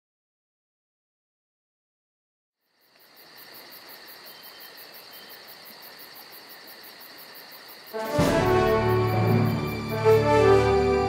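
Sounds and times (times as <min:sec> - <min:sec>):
crickets chirring: 0:02.6 - 0:11.0
music: 0:07.9 - 0:11.0.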